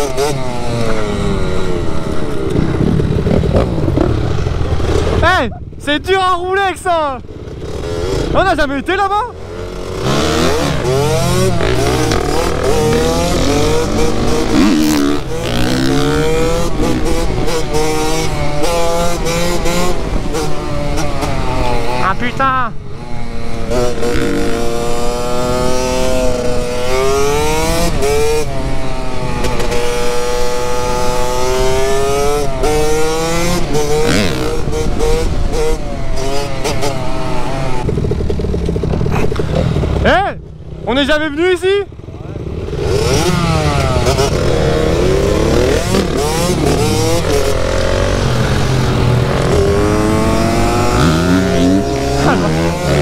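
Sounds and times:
dirt bike engine revving: 0.0s - 53.0s.

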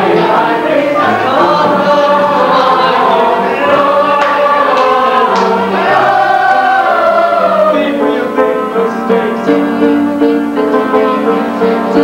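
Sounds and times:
chorus of young voices singing: 0.0s - 10.1s
keyboard repeated notes: 0.0s - 12.0s.

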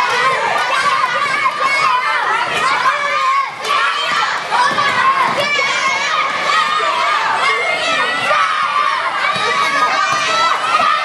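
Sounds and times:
children shouting and cheering: 0.0s - 11.0s.

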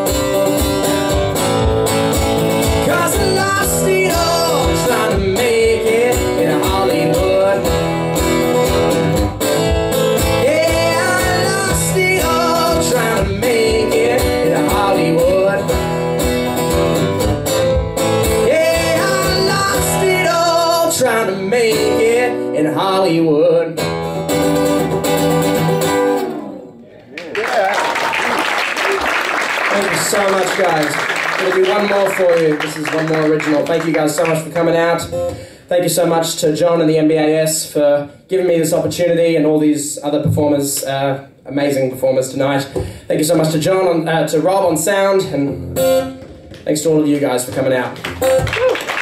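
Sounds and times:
acoustic guitar strummed: 0.0s - 26.8s, 44.6s - 48.5s
man singing blues: 2.5s - 17.0s, 18.0s - 23.9s, 31.4s - 45.7s
audience applauding: 27.0s - 34.4s, 47.5s - 49.0s.

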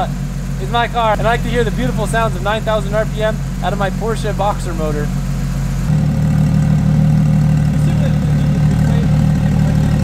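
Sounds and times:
car engine idling loudly: 0.0s - 10.0s.

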